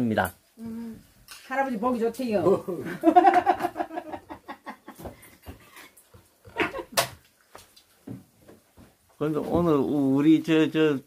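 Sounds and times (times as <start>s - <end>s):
person laughing: 2.9s - 5.1s, 6.5s - 7.0s.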